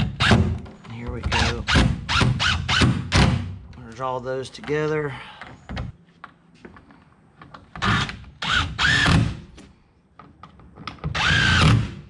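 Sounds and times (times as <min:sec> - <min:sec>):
impact driver driving screws: 0:07.8 - 0:09.4, 0:11.0 - 0:12.0.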